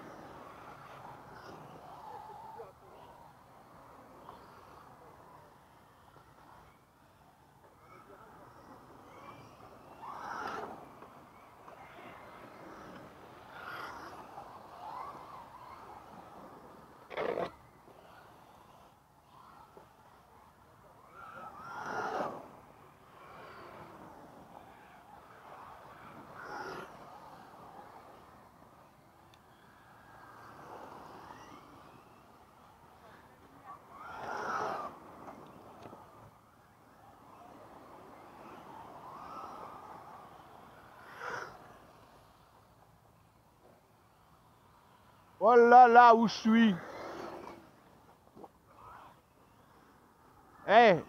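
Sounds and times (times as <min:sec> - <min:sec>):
electric rc cars on dirt: 0:00.0 - 0:51.0.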